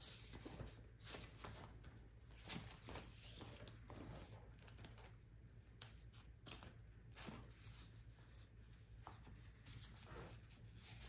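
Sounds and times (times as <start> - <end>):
paper sticker sheets rustling: 0.0 - 11.0.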